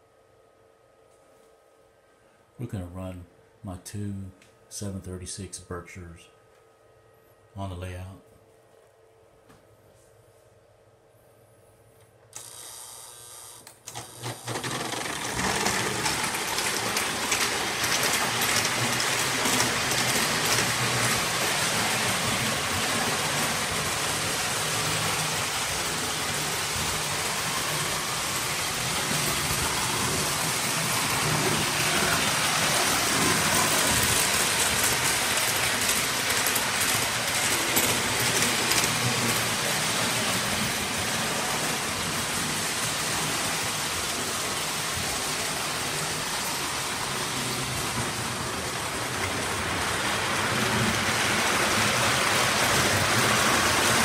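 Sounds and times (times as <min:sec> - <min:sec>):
model trains rumbling and clattering: 0:14.4 - 0:54.0.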